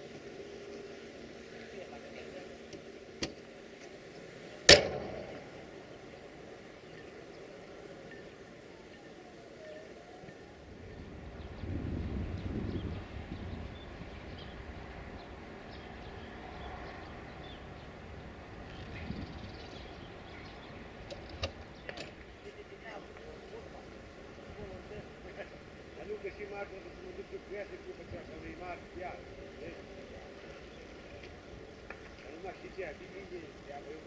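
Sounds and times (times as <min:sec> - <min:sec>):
loud sharp crack: 0:04.7 - 0:05.6.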